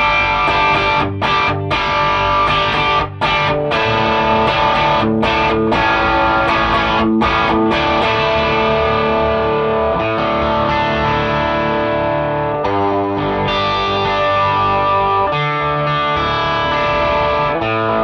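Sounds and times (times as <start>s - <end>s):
overdriven electric guitar chords: 0.0s - 18.0s.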